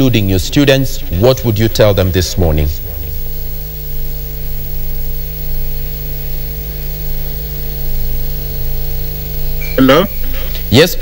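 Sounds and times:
faint held tones: 0.0s - 11.0s
low buzzing hum: 0.0s - 11.0s.

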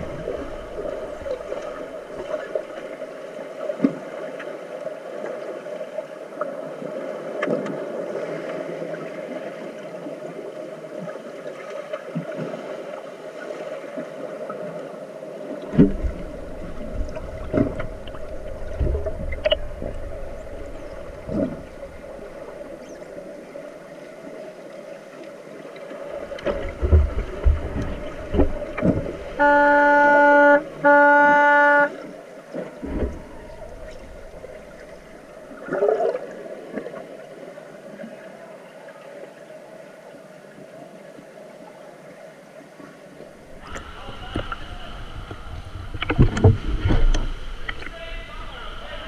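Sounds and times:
underwater horn blast: 0.0s - 2.9s, 15.8s - 23.1s, 27.5s - 35.6s
muffled underwater rush and bubbles: 0.0s - 49.0s
underwater thuds and knocks: 15.7s - 22.8s, 26.3s - 29.4s, 32.8s - 35.2s, 45.2s - 47.9s.

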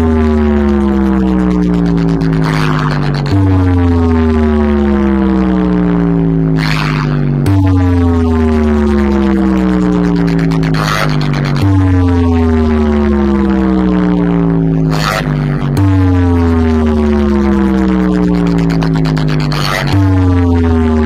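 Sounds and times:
deep bass drone: 0.0s - 21.0s
tone sliding downward: 0.0s - 21.0s.

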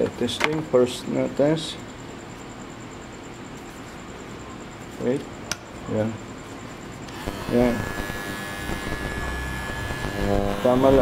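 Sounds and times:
hair clipper whine: 7.1s - 11.0s.

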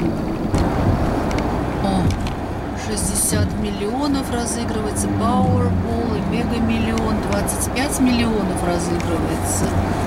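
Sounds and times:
car road noise: 0.0s - 10.0s.

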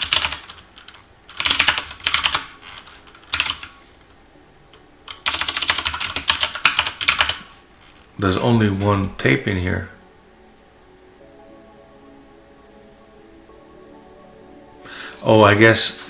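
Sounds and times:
computer keyboard typing: 0.0s - 3.8s, 5.1s - 7.5s.

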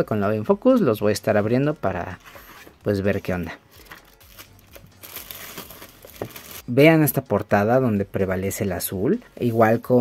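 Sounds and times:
plastic shrink-wrap crinkling: 3.7s - 6.6s.

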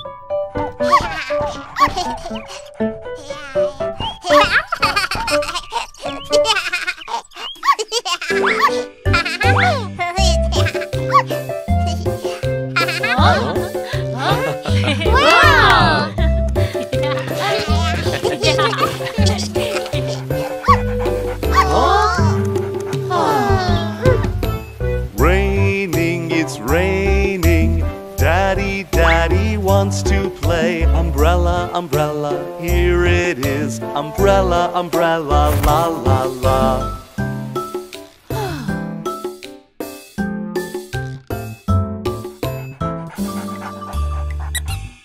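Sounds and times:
cartoon background music: 0.0s - 45.0s
cartoon puppy yipping: 0.8s - 13.6s, 15.1s - 16.0s, 17.4s - 24.3s, 43.2s - 45.0s
baby vocal sounds and giggles: 0.8s - 16.2s, 16.9s - 24.4s.

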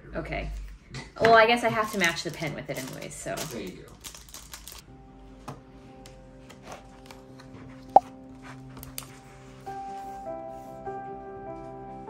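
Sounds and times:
plastic wrapper crinkling: 1.9s - 4.8s
soft music with held notes: 4.0s - 12.0s.

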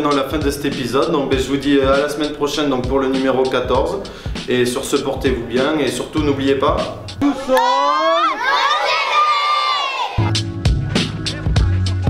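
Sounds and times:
children shouting and cheering: 7.2s - 10.4s.

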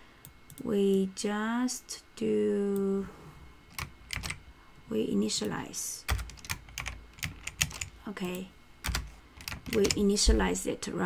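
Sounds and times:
keyboard keystrokes: 3.7s - 4.4s, 5.4s - 8.0s, 8.8s - 10.3s.

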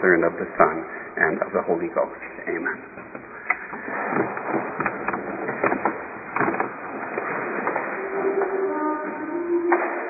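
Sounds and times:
congregation rustling and knocking: 1.2s - 10.0s.

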